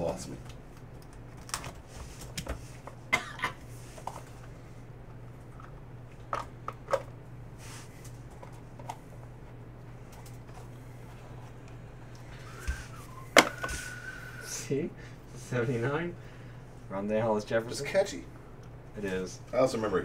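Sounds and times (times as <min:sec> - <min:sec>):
steady low hum: 0:00.0 - 0:20.0.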